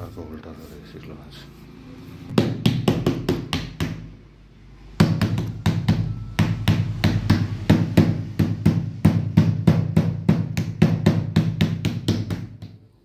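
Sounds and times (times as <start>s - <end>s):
mallet knocking on plastic frame: 2.4s - 4.1s, 5.0s - 12.8s.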